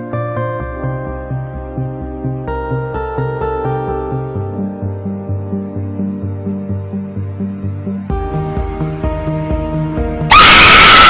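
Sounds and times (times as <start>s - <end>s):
music: 0.0s - 11.0s
loud high-pitched scream: 10.3s - 11.0s.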